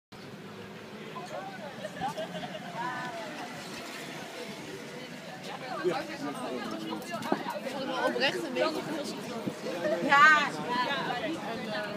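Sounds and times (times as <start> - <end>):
street noise: 0.1 - 11.9
people talking: 1.0 - 11.9.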